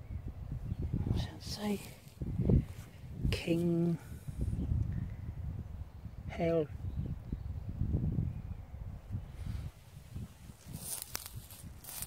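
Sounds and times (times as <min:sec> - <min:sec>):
rustling in grass: 0:01.5 - 0:04.0, 0:09.3 - 0:12.0.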